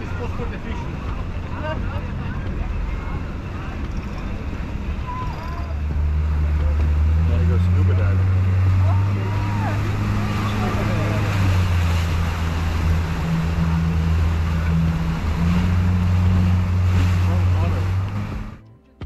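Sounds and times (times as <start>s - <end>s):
water rushing along hull: 0.0s - 18.6s
boat engine droning: 0.0s - 18.7s.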